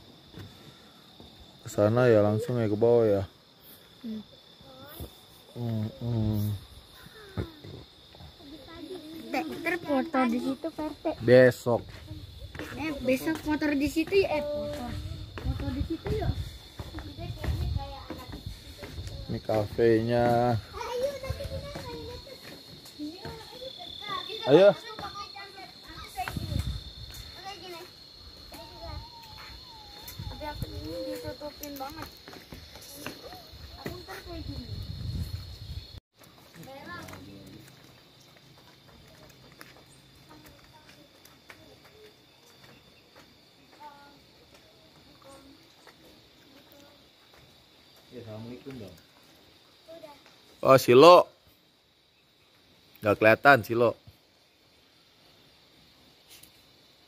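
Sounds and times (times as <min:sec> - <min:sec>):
faint footsteps: 0:06.8 - 0:50.6.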